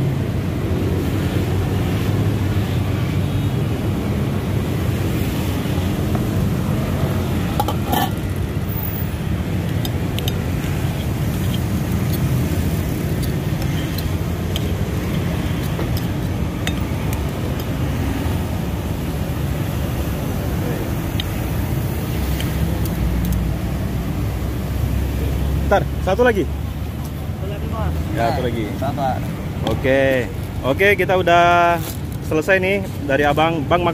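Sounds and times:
road traffic rumble: 0.0s - 33.9s.

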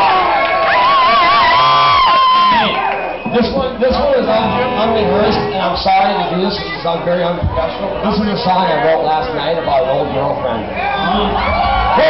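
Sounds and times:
crowd cheering and whooping: 0.0s - 3.5s, 10.7s - 12.0s.

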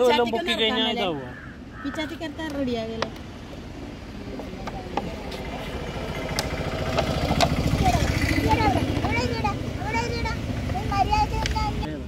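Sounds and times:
small vehicle engine running: 5.4s - 11.9s.

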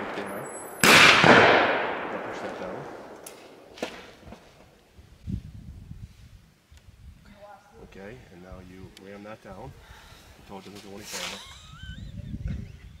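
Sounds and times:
echo of gunshot: 0.0s - 4.1s.

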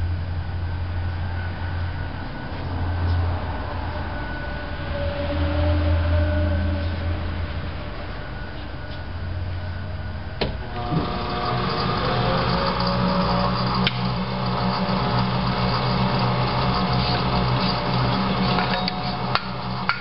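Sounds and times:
machine motors humming: 10.3s - 20.0s.

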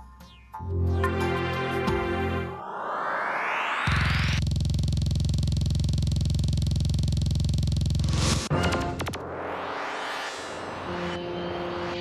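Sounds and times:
pulsing electronic buzzing drone: 2.6s - 12.0s.

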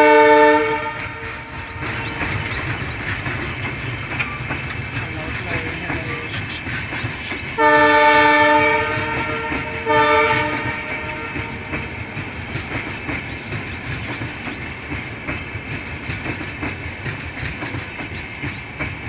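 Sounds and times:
multi-tone train horn: 0.0s - 1.8s, 7.6s - 12.0s
train wheels clattering over rail joints: 0.0s - 19.0s.

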